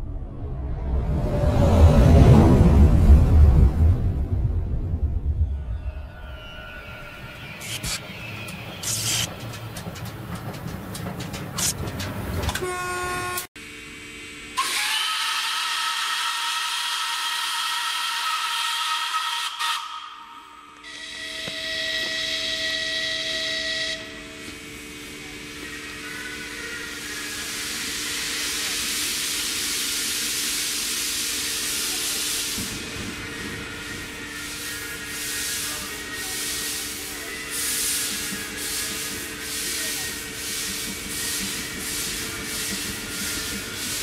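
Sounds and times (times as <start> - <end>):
steam locomotive whistle: 12.5 - 13.5, 14.6 - 24.4
hiss of escaping steam: 26.8 - 44.0.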